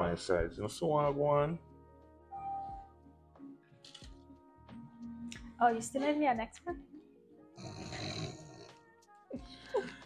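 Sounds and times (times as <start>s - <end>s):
faint background music: 0.0s - 10.0s
woman laughing breathily: 9.3s - 10.0s.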